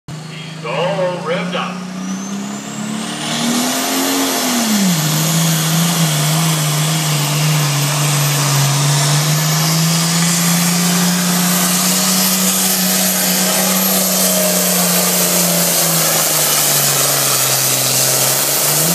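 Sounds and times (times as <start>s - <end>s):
tractor diesel engine at high revs: 0.1s - 18.9s.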